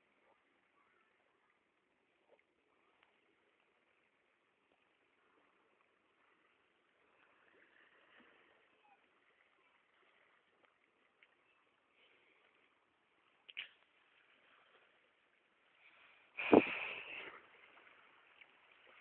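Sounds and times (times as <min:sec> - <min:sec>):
faint steady hiss: 0:00.0 - 0:19.0.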